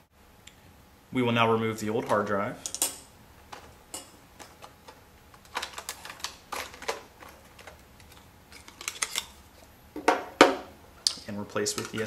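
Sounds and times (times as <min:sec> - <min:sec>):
plastic and metal parts clattering: 0:02.1 - 0:09.4, 0:11.6 - 0:12.0.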